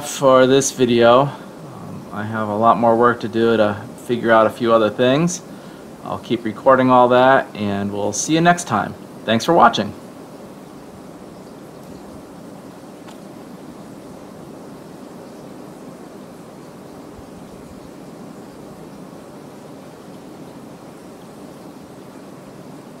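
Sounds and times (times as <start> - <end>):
steady background hiss: 0.0 - 23.0.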